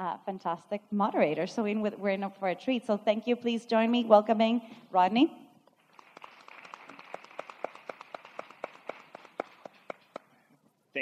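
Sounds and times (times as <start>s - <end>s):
small audience applauding: 5.8s - 10.4s.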